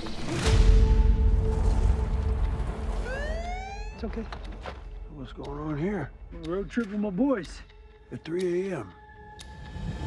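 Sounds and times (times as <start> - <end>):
police car siren wailing: 3.0 - 4.1.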